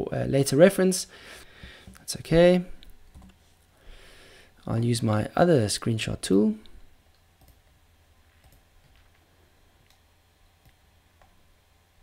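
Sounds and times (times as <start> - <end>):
computer mouse clicks: 2.8 - 3.4, 7.1 - 7.7, 8.4 - 9.0.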